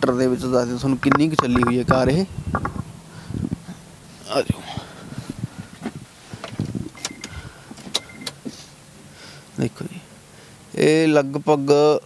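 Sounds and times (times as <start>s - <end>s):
short high electronic beep: 1.4s - 1.9s.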